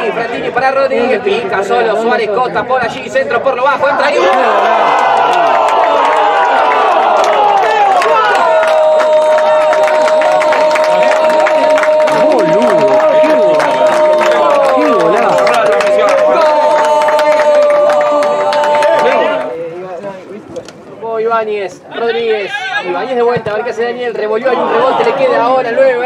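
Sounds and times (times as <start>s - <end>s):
crowd cheering: 4.0s - 19.7s, 24.5s - 25.8s
commentator shouting goal: 9.9s - 16.7s.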